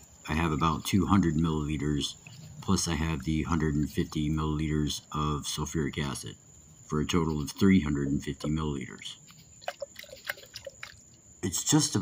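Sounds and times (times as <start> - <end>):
liquid sloshing in glass beaker: 9.2 - 11.3.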